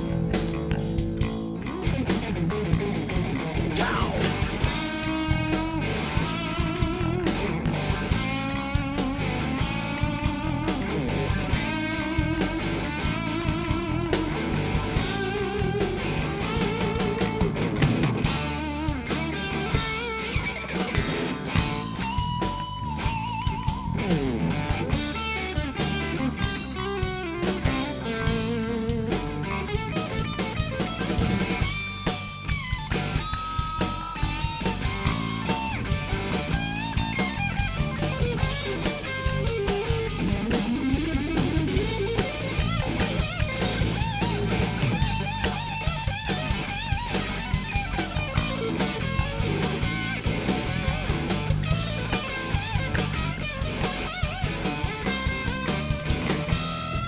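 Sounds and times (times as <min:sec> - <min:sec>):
bass guitar: 0:00.0 - 0:57.0
drum kit beat: 0:00.0 - 0:57.0
electric guitar lead: 0:00.0 - 0:57.0.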